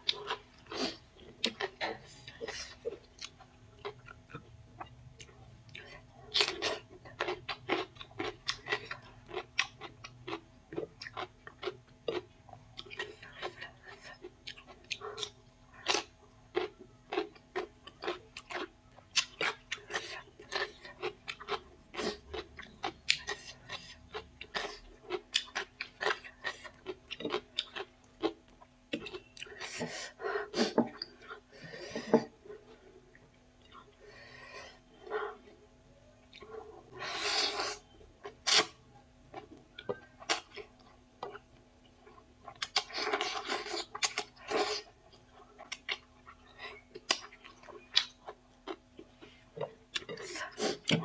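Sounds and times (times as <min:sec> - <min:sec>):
chewing crunchy cucumber: 0:00.0 - 0:29.8, 0:36.2 - 0:51.0.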